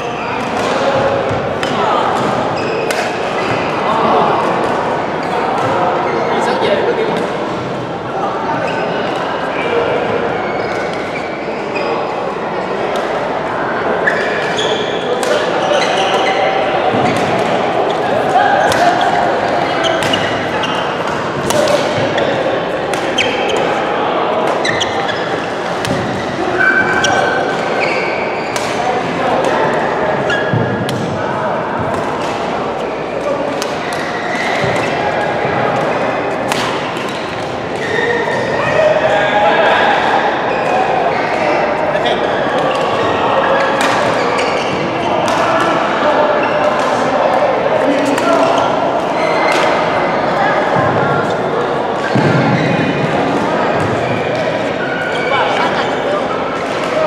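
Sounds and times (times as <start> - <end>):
chatter of players: 0.0 - 57.0
rackets striking shuttlecocks: 35.8 - 37.9.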